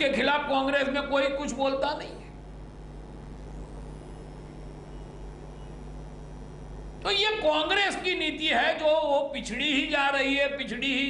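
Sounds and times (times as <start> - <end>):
low background hum and rumble: 0.0 - 11.0.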